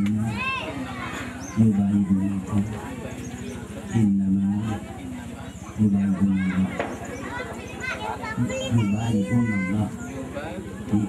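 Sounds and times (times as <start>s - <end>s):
children's voices: 0.1s - 2.9s, 6.0s - 11.0s
man talking into a microphone: 5.8s - 6.8s.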